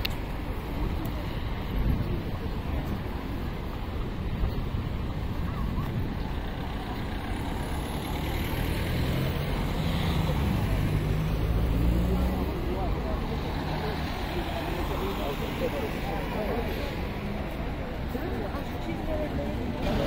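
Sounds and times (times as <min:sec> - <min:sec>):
passers-by talking: 0:00.0 - 0:20.0
traffic rumble: 0:00.0 - 0:20.0
vehicle engine passing: 0:07.2 - 0:14.8.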